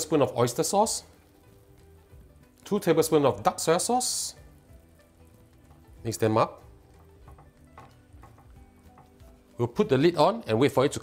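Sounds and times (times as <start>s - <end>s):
spatula stirring vegetables in liquid: 4.4s - 9.6s.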